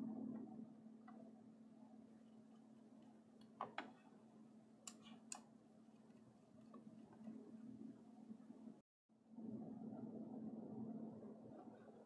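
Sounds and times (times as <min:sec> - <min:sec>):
faint steady hum: 0:00.0 - 0:12.0
computer mouse clicks: 0:04.8 - 0:06.9.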